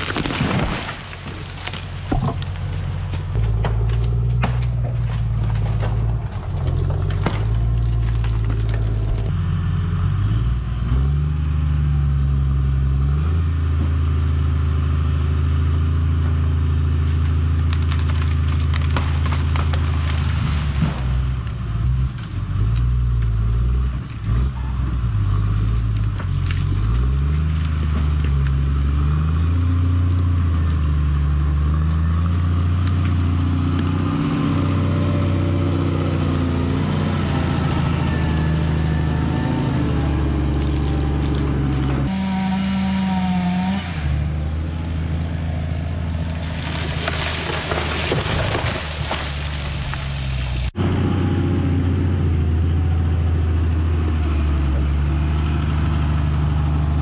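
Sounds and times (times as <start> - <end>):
sharp cracks: 0.0 - 9.3, 17.3 - 21.4, 46.1 - 50.7
diesel engine revving: 0.0 - 57.0.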